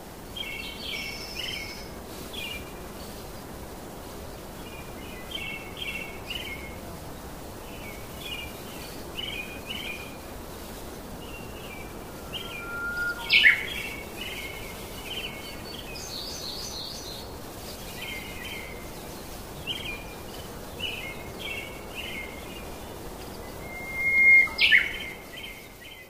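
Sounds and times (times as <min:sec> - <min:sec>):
faint steady hiss: 0:00.0 - 0:26.0
birds chirping: 0:10.9 - 0:17.1
thin steady whistle: 0:11.4 - 0:14.5, 0:23.5 - 0:25.0.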